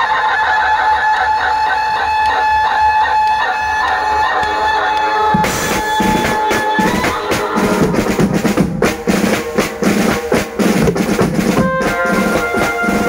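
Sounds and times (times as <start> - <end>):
band high melody: 5.1 - 13.0
drums and cymbals: 5.4 - 13.0.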